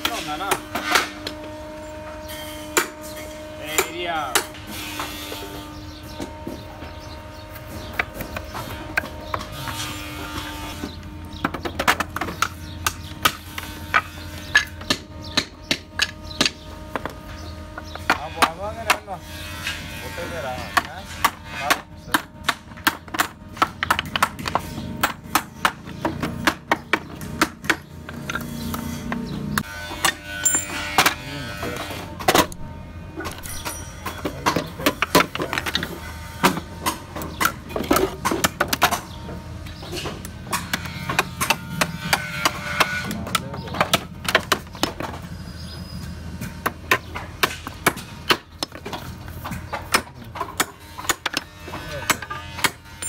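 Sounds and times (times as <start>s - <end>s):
machine hum: 22.3s - 43.0s.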